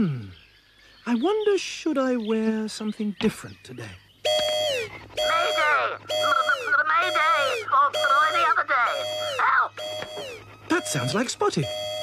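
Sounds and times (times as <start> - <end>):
electronic alarm beep falling in pitch: 4.3 - 12.0.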